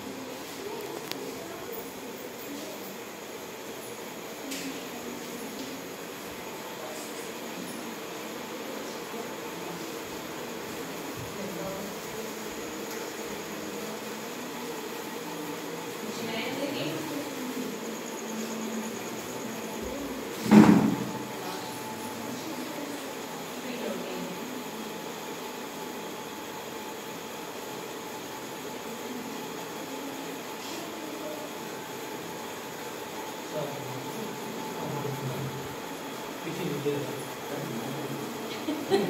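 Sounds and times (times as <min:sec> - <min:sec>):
children murmuring: 0:00.0 - 0:23.6
even room hiss: 0:00.0 - 0:39.0.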